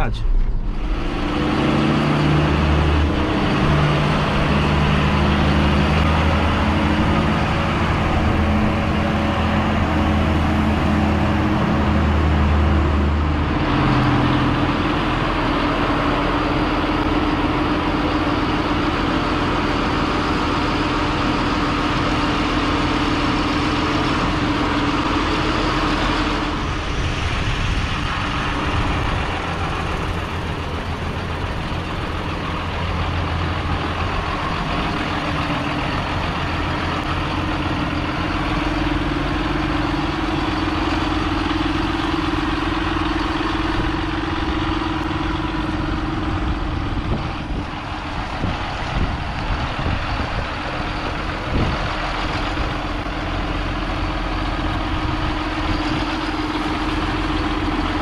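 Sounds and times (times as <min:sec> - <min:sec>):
diesel tractor engine running: 0:00.0 - 0:58.0.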